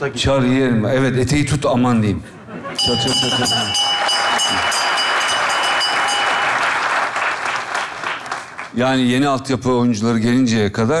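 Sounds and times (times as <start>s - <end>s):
bell ringing: 2.8s - 7.1s
studio audience applauding: 3.2s - 9.0s.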